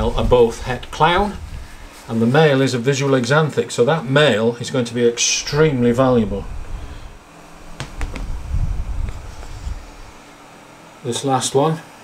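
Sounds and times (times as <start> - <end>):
handling rumble: 0.0 - 2.2, 5.3 - 10.3.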